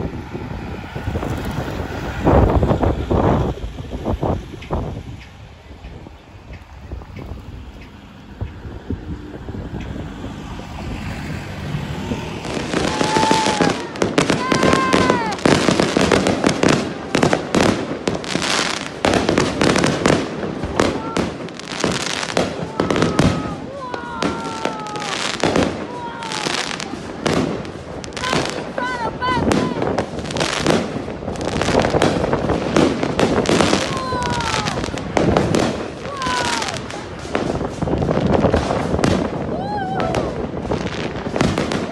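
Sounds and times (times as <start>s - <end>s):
fireworks bangs and crackles: 0.0s - 41.9s
people calling out: 12.4s - 17.6s, 20.6s - 30.4s, 33.5s - 35.0s, 35.9s - 37.2s, 39.4s - 40.5s.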